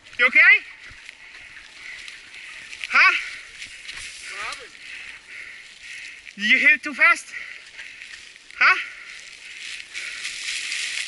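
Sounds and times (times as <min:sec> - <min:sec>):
bike tyres crunching dry leaves: 0:00.0 - 0:11.0.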